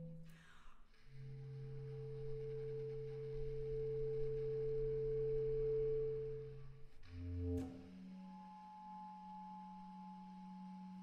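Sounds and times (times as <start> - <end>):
bass clarinet multiphonic tone: 1.0 - 11.0.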